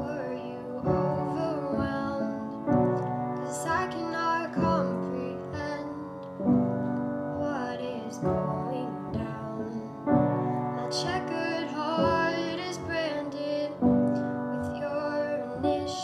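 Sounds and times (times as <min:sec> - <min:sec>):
piano chords: 0:00.0 - 0:16.0
woman singing a ballad: 0:00.0 - 0:16.0.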